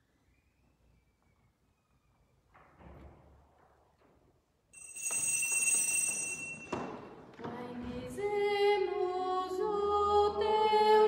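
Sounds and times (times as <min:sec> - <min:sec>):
bell ringing: 0:04.8 - 0:07.1.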